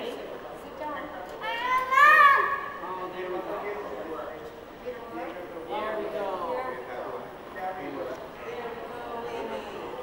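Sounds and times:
young child crying out: 1.4 - 2.8.

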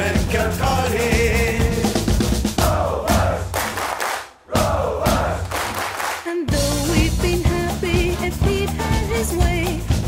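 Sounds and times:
band drums and bass: 0.0 - 3.5, 6.5 - 10.0
group of voices chanting: 2.6 - 5.9.

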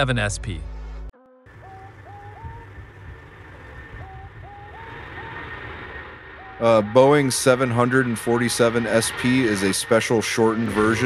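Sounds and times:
jet engines rumbling: 0.0 - 11.0.

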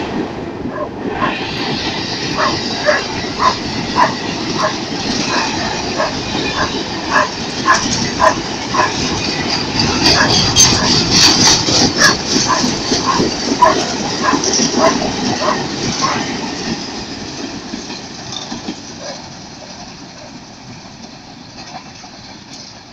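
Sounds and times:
freight train wheels clattering: 0.0 - 22.9.

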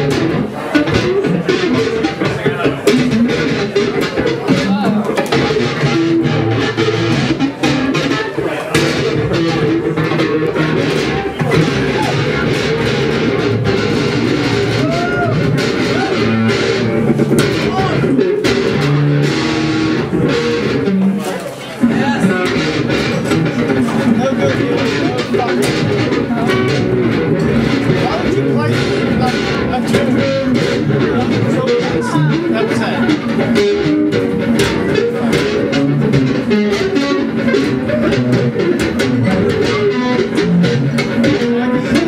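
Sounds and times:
solo guitar plucked notes: 0.0 - 42.0.

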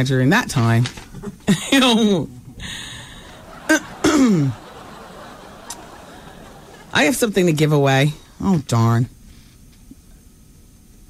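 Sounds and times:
faint broadcast hiss: 0.0 - 11.0.

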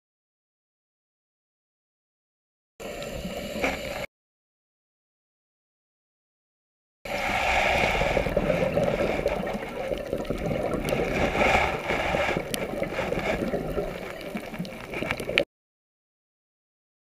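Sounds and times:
diver breathing bubbles underwater: 2.8 - 4.1, 7.1 - 15.4.

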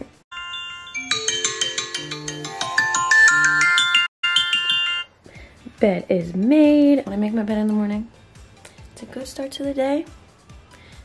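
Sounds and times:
phone alarm chime melody: 0.3 - 5.2.

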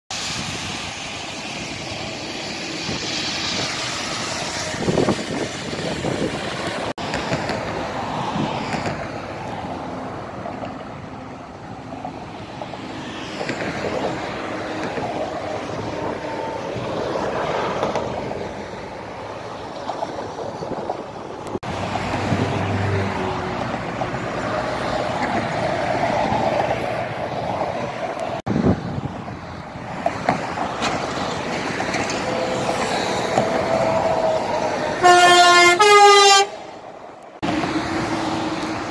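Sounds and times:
tyre hiss on wet road: 0.1 - 19.6, 21.6 - 26.4, 29.5 - 38.9
cars and lorries passing: 0.1 - 38.9.

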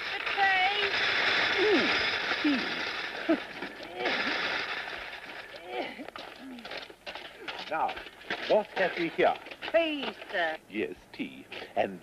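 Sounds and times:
steady hiss: 0.0 - 6.1.

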